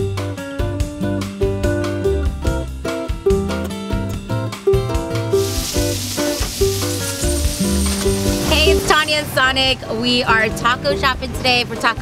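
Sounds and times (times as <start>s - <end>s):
background music: 0.0s - 12.0s
food sizzling on a griddle: 5.4s - 9.2s.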